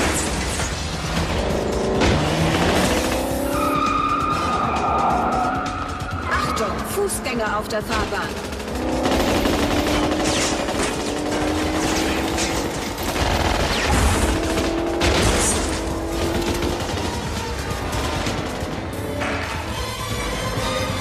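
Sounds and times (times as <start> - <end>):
action score music: 0.0 - 21.0
automatic gunfire bursts: 7.8 - 17.5.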